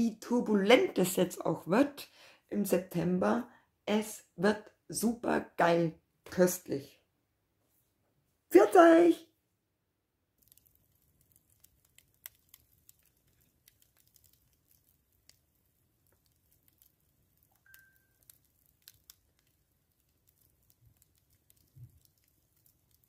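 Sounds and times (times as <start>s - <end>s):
wood fire crackling: 9.9s - 23.0s.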